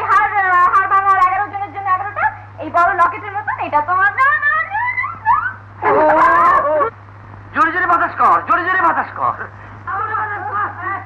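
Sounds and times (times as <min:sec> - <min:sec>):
high-pitched wailing voice: 0:05.8 - 0:06.9.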